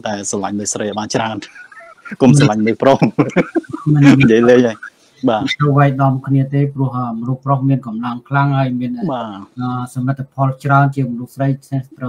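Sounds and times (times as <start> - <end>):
man laughing: 1.4 - 5.4.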